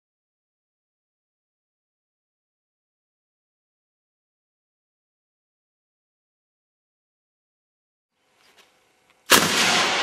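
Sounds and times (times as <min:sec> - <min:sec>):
loud rushing tail: 0:09.3 - 0:10.0
potato cannon bang: 0:09.3 - 0:10.0.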